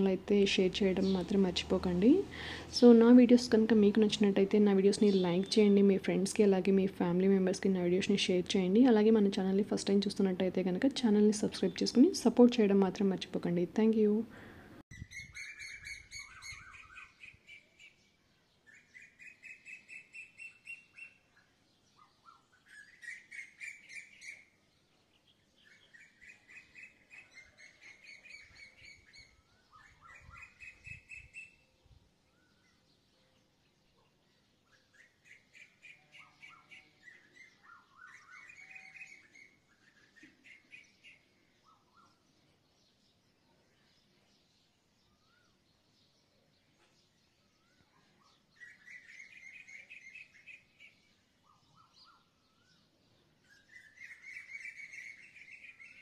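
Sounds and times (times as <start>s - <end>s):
songbird trilling: 14.9s - 18.0s, 34.7s - 42.2s, 47.6s - 52.8s, 53.4s - 56.0s.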